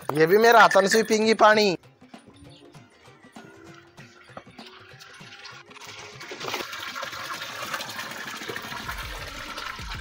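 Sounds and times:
water pouring into a trough: 4.0s - 10.0s.

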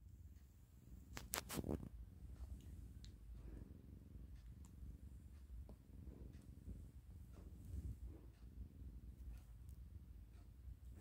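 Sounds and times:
cat purring: 0.0s - 11.0s
faint clicks: 2.6s - 3.3s.

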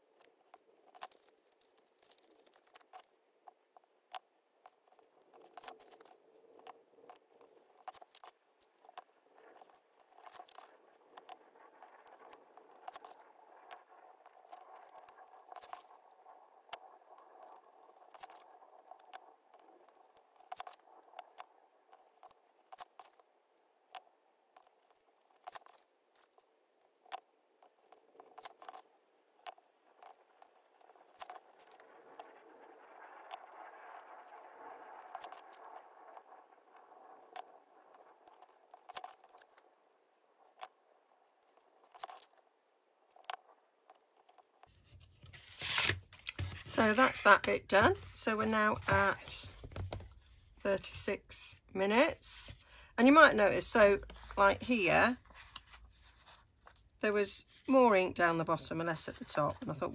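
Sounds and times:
paper rustling and creasing: 0.0s - 32.4s, 33.1s - 50.9s, 53.6s - 59.9s
faint clicks and taps: 41.4s - 51.1s.

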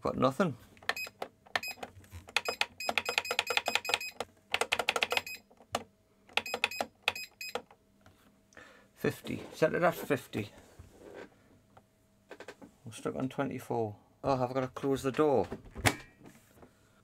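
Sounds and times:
control panel beeping: 0.9s - 5.5s, 6.3s - 7.7s.

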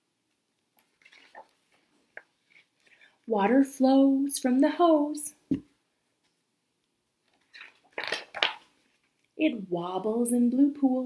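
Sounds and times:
book page rustling: 0.8s - 2.8s, 7.2s - 9.2s.

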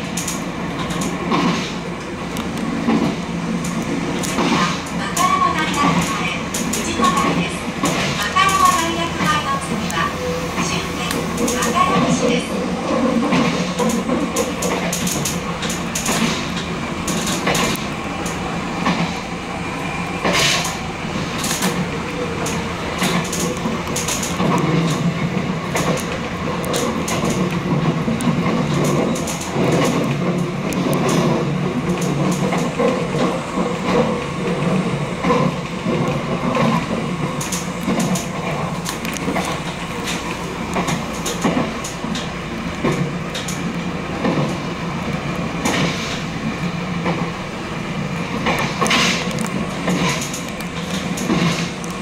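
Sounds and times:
train wheels rumbling on rail: 0.0s - 52.0s
sharp clicks and knocks: 13.2s - 19.2s, 22.4s - 44.6s.

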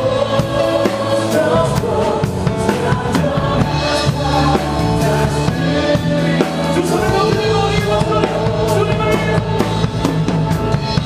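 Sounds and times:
voices singing: 0.0s - 10.4s
drum kit: 0.0s - 11.0s
worship band playing: 0.0s - 11.0s.

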